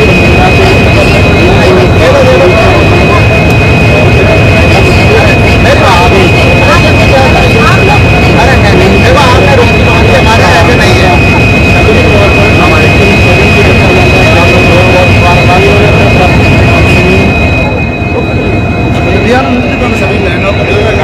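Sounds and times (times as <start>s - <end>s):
high whine: 0.0s - 21.0s
locomotive engine rumbling: 0.0s - 21.0s
voices talking: 0.0s - 21.0s.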